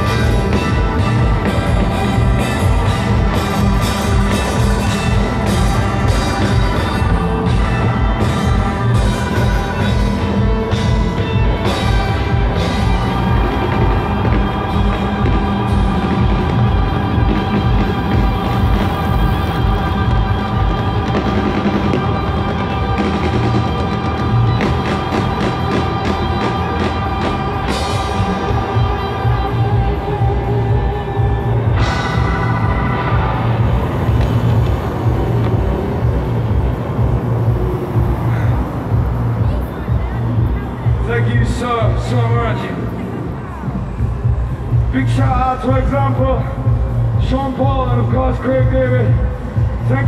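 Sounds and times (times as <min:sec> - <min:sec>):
live music with heavy bass: 0:00.0 - 0:50.0.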